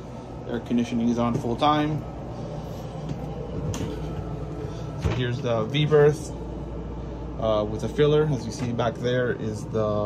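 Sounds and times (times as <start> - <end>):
air conditioning hum: 0.0 - 10.0.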